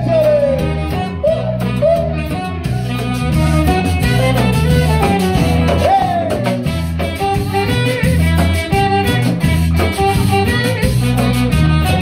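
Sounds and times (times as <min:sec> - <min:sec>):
high swooping sung or horn line: 0:00.0 - 0:12.0
live band playing: 0:00.0 - 0:12.0.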